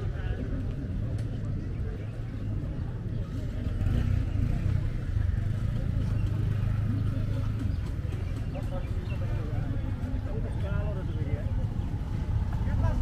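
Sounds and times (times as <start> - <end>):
murmur of voices: 0.0 - 13.0
vehicle engine rumbling: 0.0 - 13.0.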